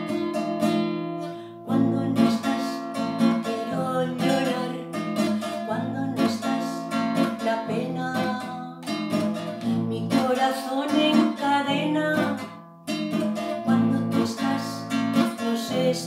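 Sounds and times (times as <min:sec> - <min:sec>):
classical guitar strummed: 0:00.0 - 0:16.0
woman singing: 0:01.5 - 0:12.6, 0:13.4 - 0:16.0.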